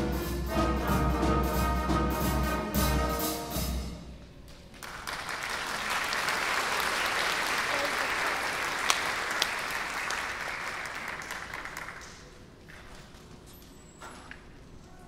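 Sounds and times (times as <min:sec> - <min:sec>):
audience applauding: 0:04.7 - 0:12.6.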